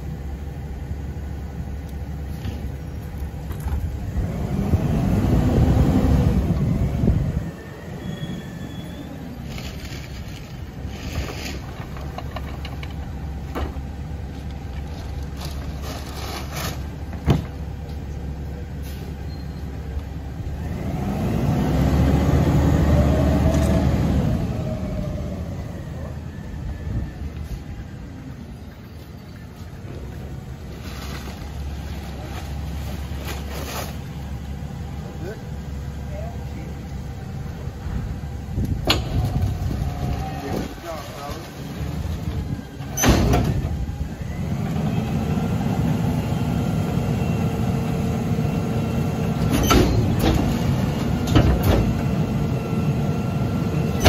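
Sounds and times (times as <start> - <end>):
garbage truck engine revving: 3.9 - 9.8, 20.4 - 26.5, 41.5 - 54.0
bags and carts banging: 14.8 - 17.6, 30.6 - 34.2, 38.9 - 43.7.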